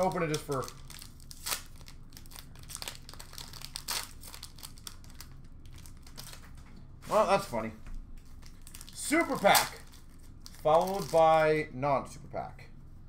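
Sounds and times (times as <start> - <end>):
foil wrapper tearing and crinkling: 0.0 - 6.5, 8.4 - 11.4.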